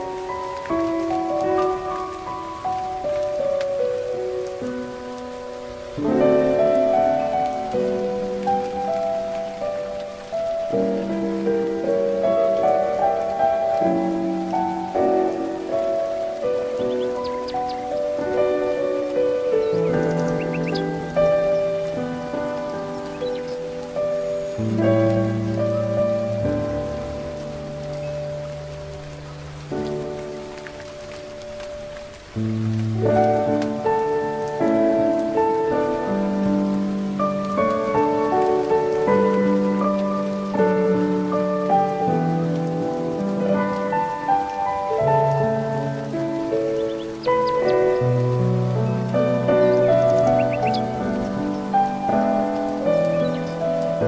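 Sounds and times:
gentle solo piano music: 0.0 - 54.0
rain-like hiss: 0.0 - 54.0
bird chirps: 16.8 - 18.0, 19.6 - 20.9, 23.1 - 23.6, 49.6 - 50.9.

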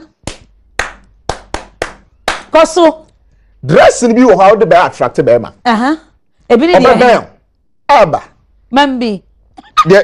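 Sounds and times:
person clapping hands: 0.2 - 2.5.

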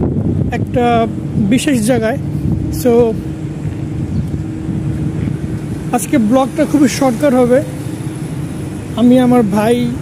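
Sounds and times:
constant hum: 0.0 - 10.0
low rumble of street noise: 0.0 - 10.0.

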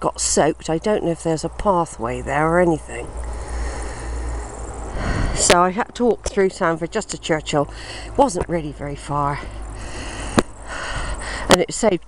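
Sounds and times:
wind buffeting microphone: 2.9 - 6.3.

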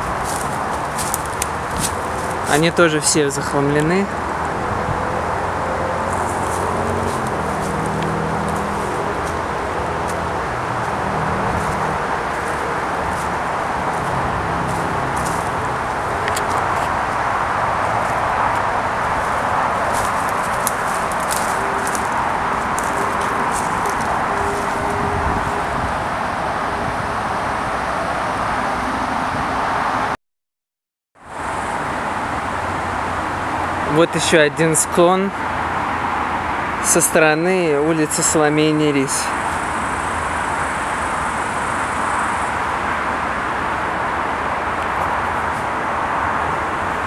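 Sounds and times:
footsteps on dry leaves: 0.0 - 2.8, 5.9 - 25.8.

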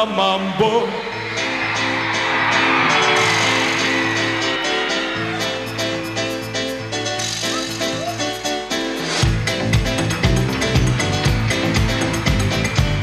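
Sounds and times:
live pop band playing dance song: 0.0 - 13.0
bass: 6.4 - 13.0.

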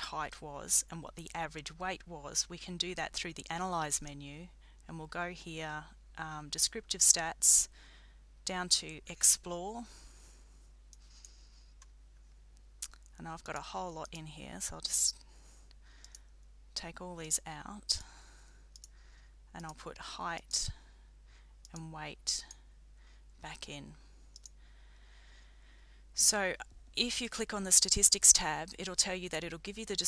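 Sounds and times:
low steady hum: 0.0 - 30.0
faint mouse clicks: 15.2 - 16.4, 18.7 - 19.0, 24.3 - 24.6
computer mouse click: 16.0 - 16.2, 18.7 - 18.9, 24.3 - 24.6.

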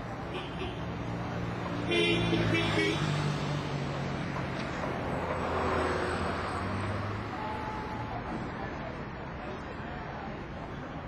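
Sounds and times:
vehicle engine: 0.0 - 9.6
road noise: 0.0 - 11.0
car horn: 0.3 - 0.9, 1.8 - 3.2.

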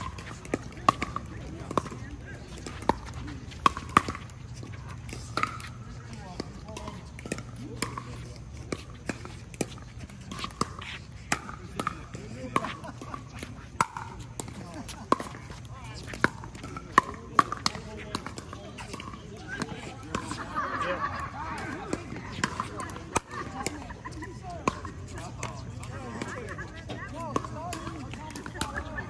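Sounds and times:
paddles hitting plastic ball: 0.0 - 29.0.

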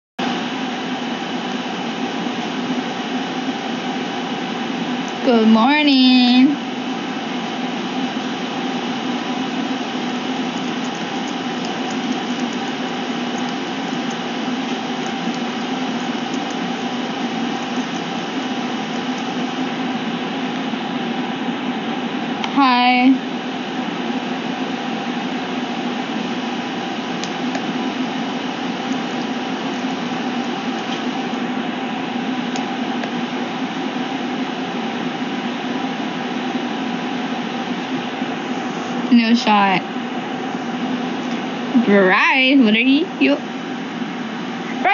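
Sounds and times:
steady machine hum with hiss: 0.2 - 44.9.

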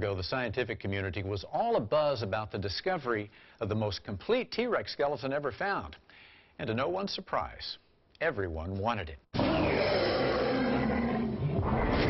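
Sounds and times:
dinosaur roaring: 9.4 - 12.0.

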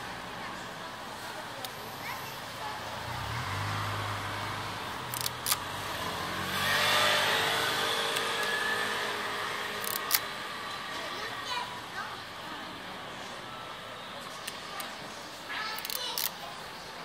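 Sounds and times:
car engine passing by: 2.7 - 11.1
sharp clicks: 5.1 - 5.6, 9.8 - 10.3.

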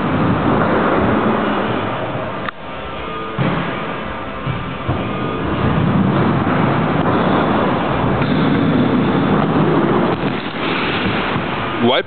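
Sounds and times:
wheels rolling on concrete: 0.0 - 12.0.

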